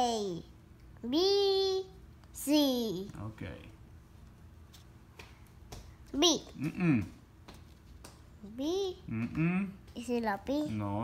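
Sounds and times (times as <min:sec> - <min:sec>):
pencil tapping on paper: 0:07.4 - 0:08.3.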